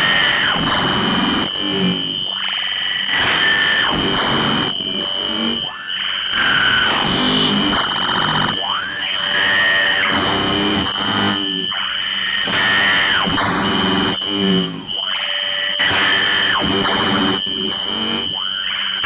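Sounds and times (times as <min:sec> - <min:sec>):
high whining tone: 0:06.2 - 0:07.8
distorted noise washes: 0:06.8 - 0:08.0.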